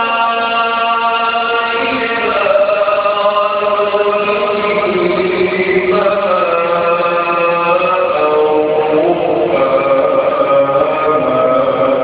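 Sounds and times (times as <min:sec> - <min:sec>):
man reciting melodically: 0:00.0 - 0:12.0.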